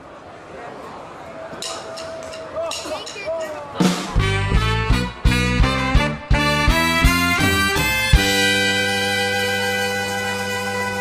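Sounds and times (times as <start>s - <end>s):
drums: 1.9s - 11.0s
horn section playing swing figure: 3.9s - 11.0s
bass: 4.1s - 11.0s.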